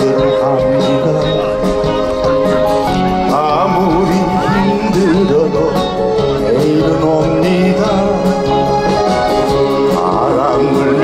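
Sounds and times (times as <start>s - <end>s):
live band playing: 0.0s - 11.0s
man singing with vibrato: 0.0s - 11.0s.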